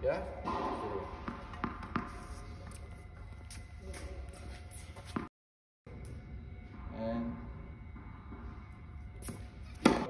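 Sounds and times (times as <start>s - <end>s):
tennis racquet hitting ball: 0.4s - 2.4s, 9.2s - 10.0s.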